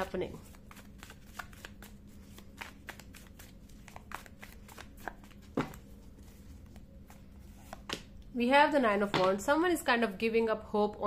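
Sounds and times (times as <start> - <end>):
cards being shuffled: 0.3 - 8.1.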